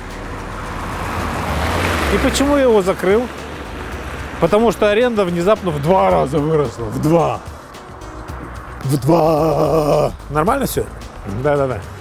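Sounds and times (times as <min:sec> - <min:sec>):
car driving past on wet asphalt: 0:00.0 - 0:07.0
car engine noise: 0:00.0 - 0:12.0.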